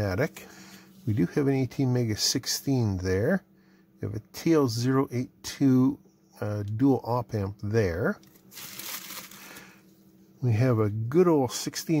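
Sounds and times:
plastic packaging crinkling: 0:08.2 - 0:09.7.

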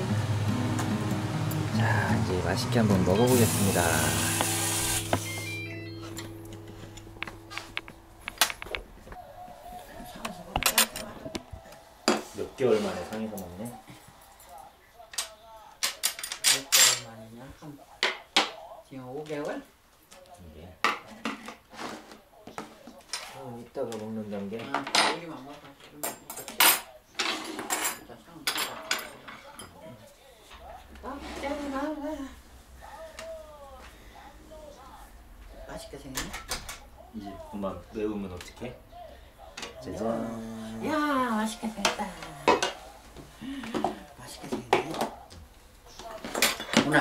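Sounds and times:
dishes and cutlery clinking: 0:10.0 - 0:13.4, 0:14.5 - 0:17.2, 0:24.6 - 0:30.0, 0:41.8 - 0:42.9, 0:46.0 - 0:47.0.

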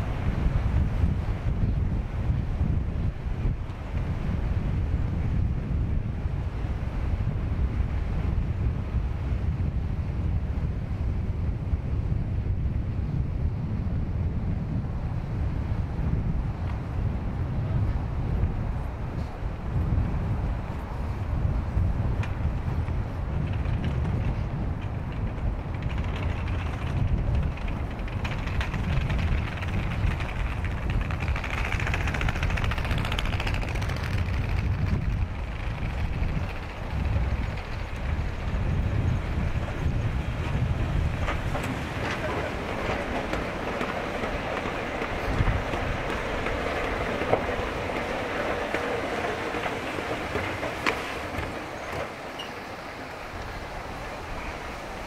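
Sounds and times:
wind on microphone: 0:00.0 - 0:55.0
road traffic: 0:36.1 - 0:55.0.

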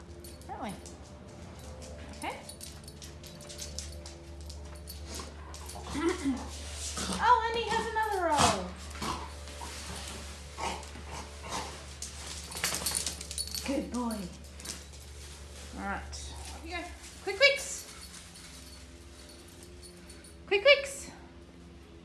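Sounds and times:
rustling and handling noises: 0:00.0 - 0:20.4.

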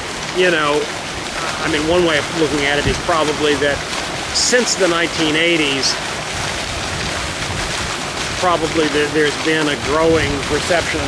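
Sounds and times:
wind on microphone: 0:01.3 - 0:03.9, 0:05.8 - 0:09.0, 0:09.8 - 0:11.0.

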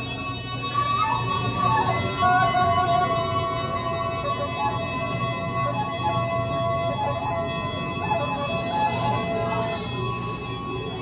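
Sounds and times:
side-blown flute: 0:00.0 - 0:11.0
steady held tones: 0:00.0 - 0:11.0.

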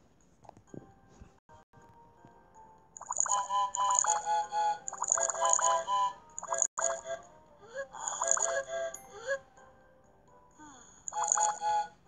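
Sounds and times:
bright electronic music: 0:03.0 - 0:07.0.

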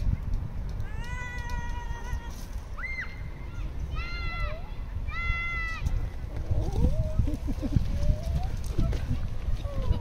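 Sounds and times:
low wind-like rumble: 0:00.0 - 0:10.0.

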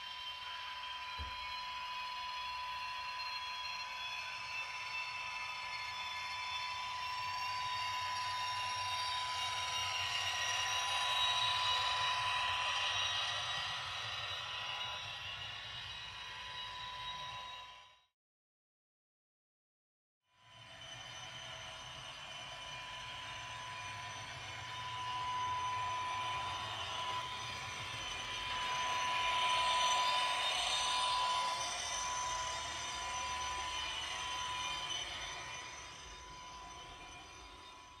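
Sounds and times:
model train rumble and whine: 0:00.0 - 0:18.0, 0:20.5 - 0:38.0.

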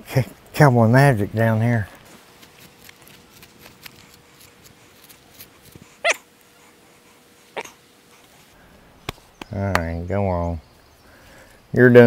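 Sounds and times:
short high-pitched yelps: 0:06.0 - 0:06.2.

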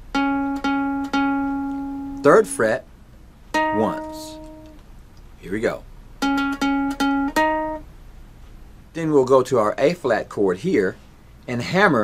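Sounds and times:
ukulele single notes: 0:00.1 - 0:02.6, 0:03.5 - 0:04.8, 0:06.2 - 0:07.8.

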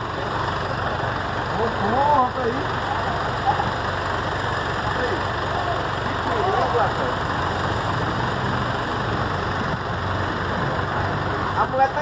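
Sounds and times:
faint voices: 0:00.0 - 0:07.4
bus engine idling: 0:00.0 - 0:12.0.

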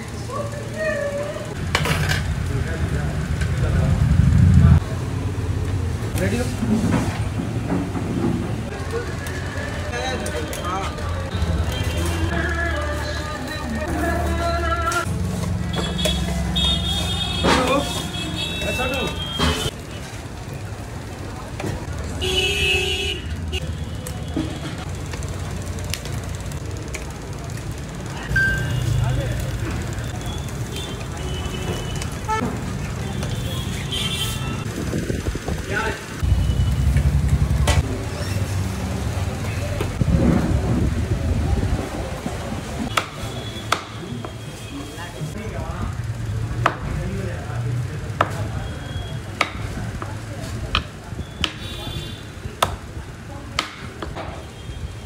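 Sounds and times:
street traffic rumbling: 0:00.0 - 0:55.0
low rumble: 0:03.6 - 0:05.1
vehicle horn: 0:15.7 - 0:19.7, 0:22.2 - 0:24.5, 0:33.1 - 0:34.7.

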